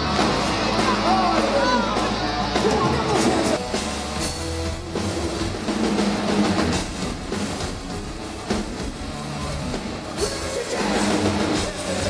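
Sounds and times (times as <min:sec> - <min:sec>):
drum kit: 0:00.0 - 0:12.0.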